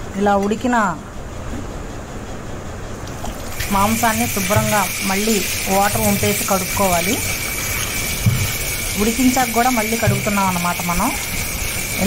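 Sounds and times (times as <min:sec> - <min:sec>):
woman speaking: 0:00.0 - 0:01.1, 0:03.7 - 0:07.3, 0:09.0 - 0:11.3.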